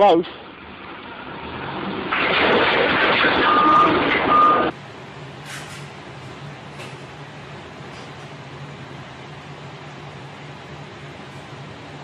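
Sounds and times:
forklift running: 0.6 - 5.4
reversing alarm beeps: 3.3 - 4.7.

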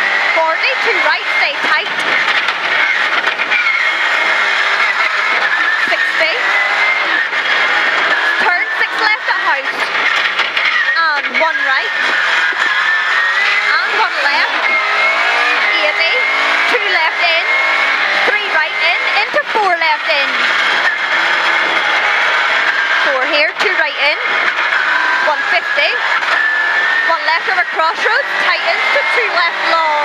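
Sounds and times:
rally car engine revving: 0.0 - 30.0
steady high whine: 0.0 - 30.0.

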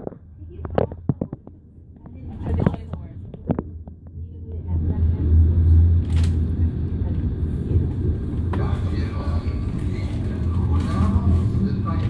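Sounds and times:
train rumbling on tracks: 0.0 - 12.0.

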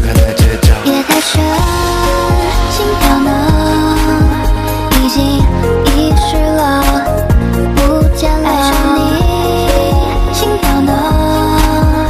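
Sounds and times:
hip-hop beat with deep kicks: 0.0 - 12.0
melodic singing: 0.0 - 12.0.

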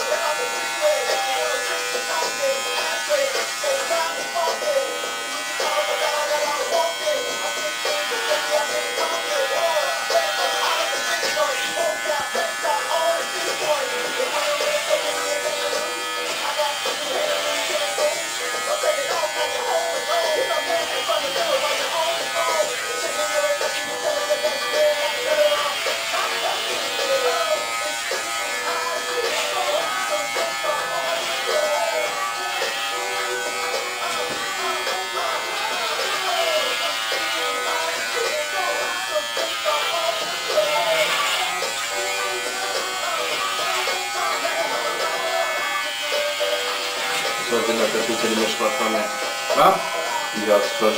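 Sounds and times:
electric hair clippers buzzing: 0.0 - 50.9
music: 0.0 - 50.9.

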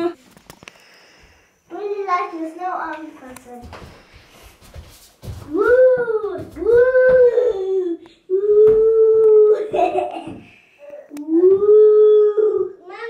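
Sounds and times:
child howling: 11.2 - 12.8.

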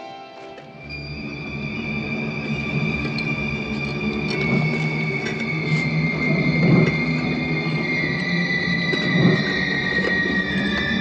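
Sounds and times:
rumbling low drone: 0.8 - 11.0.

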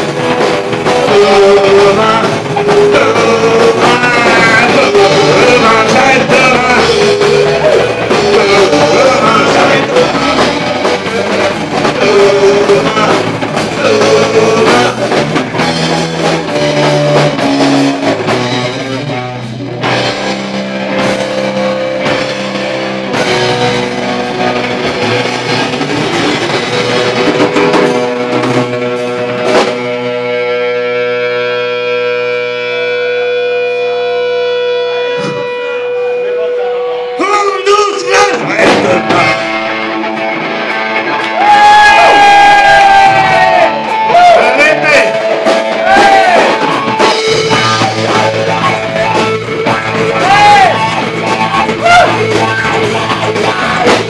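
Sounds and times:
live rock band playing: 0.0 - 54.0.

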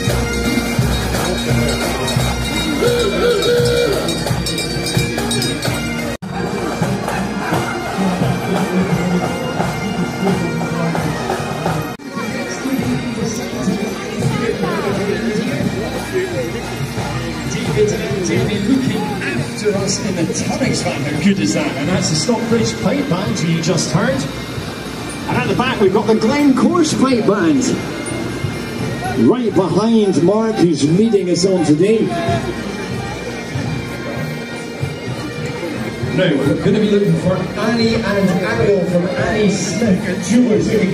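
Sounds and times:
bagpipes playing a tune: 0.0 - 40.9.

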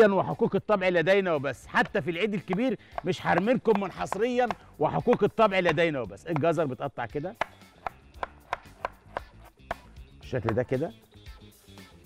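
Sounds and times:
knife chopping on wooden board: 1.8 - 6.6, 7.3 - 10.8.

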